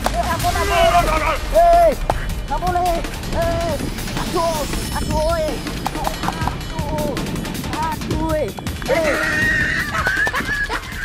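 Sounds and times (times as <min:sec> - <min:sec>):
background music: 0:00.0 - 0:11.0
short shouted cries: 0:08.9 - 0:10.3.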